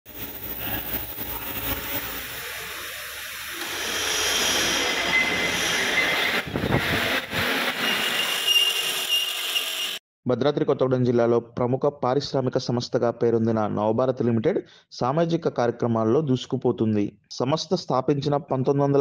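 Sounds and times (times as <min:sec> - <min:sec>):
arc welding crackle: 0:00.1 - 0:06.5
thin steady whine: 0:00.1 - 0:07.4.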